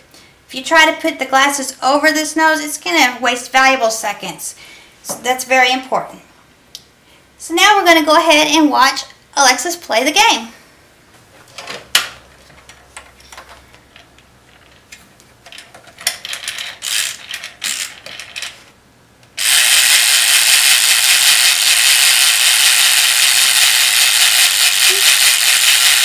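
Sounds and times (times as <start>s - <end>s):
mechanical timer ratcheting clatter: 16.1s - 18.6s, 19.4s - 26.0s.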